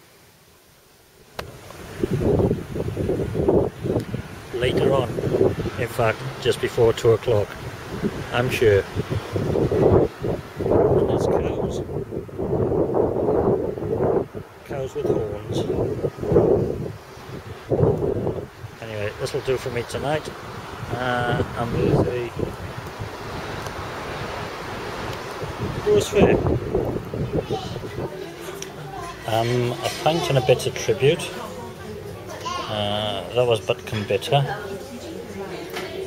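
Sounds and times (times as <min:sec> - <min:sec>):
gusty wind buffeting microphone: 0:01.4 - 0:31.1.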